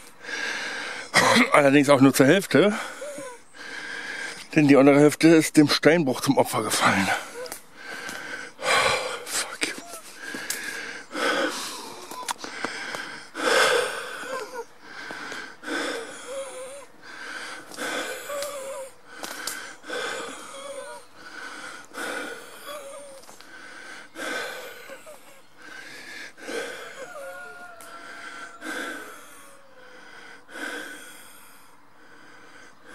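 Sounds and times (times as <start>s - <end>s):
person breathing heavily: 0.0s - 1.2s, 2.4s - 4.6s, 6.6s - 32.9s.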